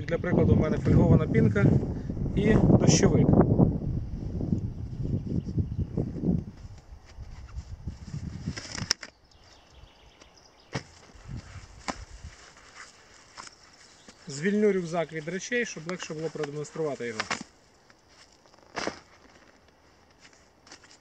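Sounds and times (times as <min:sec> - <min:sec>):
fabric rustling and scraping: 0:06.5 - 0:09.1, 0:10.8 - 0:21.0
clicks of straps and clips: 0:08.5 - 0:11.0, 0:15.8 - 0:21.0.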